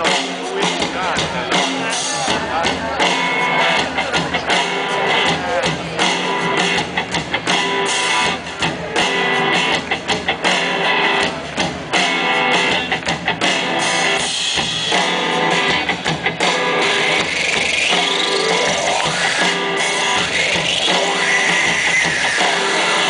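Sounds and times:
live pop-rock band playing: 0.0s - 23.0s.

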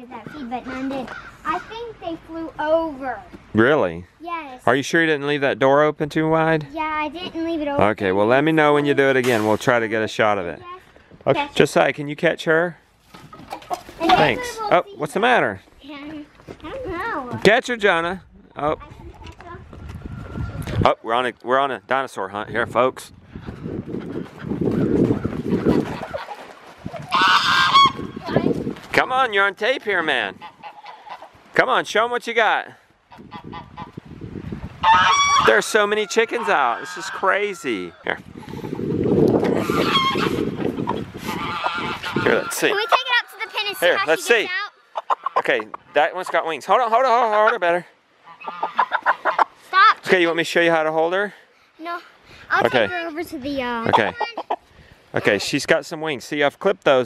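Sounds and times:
footsteps crunching on wood chips: 24.2s - 29.1s
poultry honking squawk: 27.1s - 28.2s, 30.3s - 31.4s, 33.1s - 34.0s, 34.8s - 38.1s, 39.6s - 43.8s, 48.2s - 49.6s
indistinct talking: 41.4s - 44.8s.

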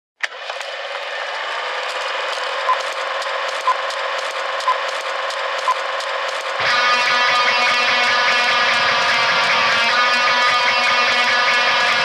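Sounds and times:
mechanical ticking and ratcheting: 1.8s - 12.0s.

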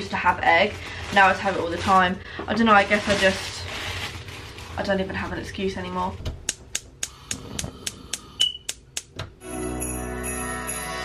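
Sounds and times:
gas igniter ticking: 6.4s - 9.3s.

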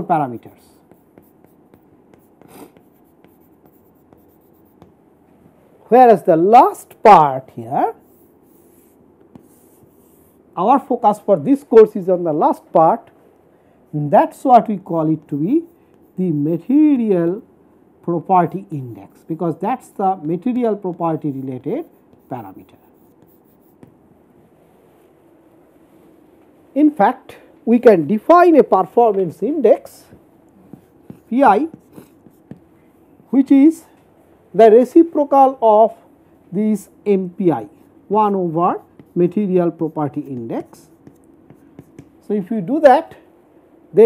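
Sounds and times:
chalk scratching on chalkboard: 0.0s - 5.0s, 7.9s - 10.5s, 15.0s - 16.8s, 20.1s - 24.0s, 30.1s - 32.7s, 37.5s - 42.3s
chalk tap: 0.4s - 5.6s, 8.0s - 10.3s, 20.2s - 24.0s, 30.0s - 32.7s, 38.7s - 42.2s.

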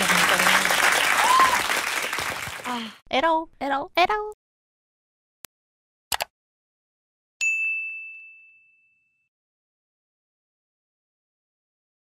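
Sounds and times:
bright bell ding: 7.4s - 9.3s.

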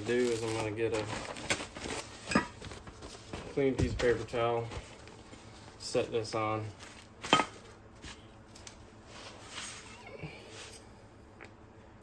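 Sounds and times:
handling and rustling: 0.0s - 10.9s.

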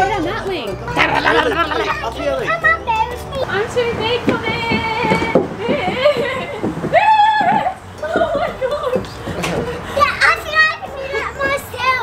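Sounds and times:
young child talking: 10.0s - 12.0s.

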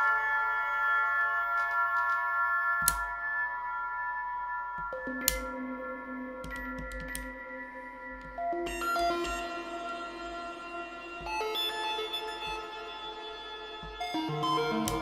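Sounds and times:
synthesizer chord: 0.0s - 15.0s.

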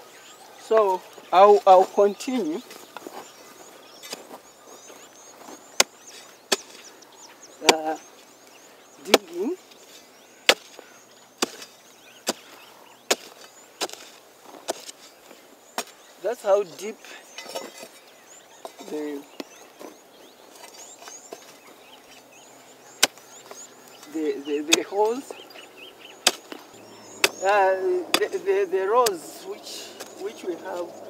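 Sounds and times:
bird chirps: 0.0s - 31.0s
hoe chopping into soil: 5.4s - 6.9s, 7.6s - 8.0s, 9.0s - 15.2s, 15.8s - 16.1s, 18.6s - 21.8s, 22.9s - 25.5s, 26.2s - 30.9s
person speaking: 27.4s - 31.0s.

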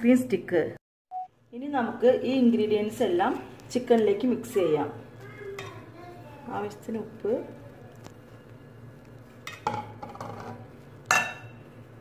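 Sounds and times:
metal bowls clinking: 9.4s - 11.6s.

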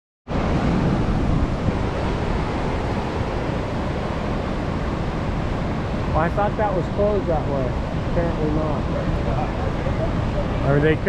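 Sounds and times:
river rushing through rapids: 0.3s - 11.0s
wind on microphone: 0.3s - 11.0s.

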